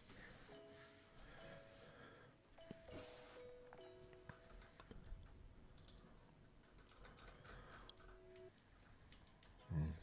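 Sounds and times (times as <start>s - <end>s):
keyboard and mouse clicks: 4.2s - 9.8s.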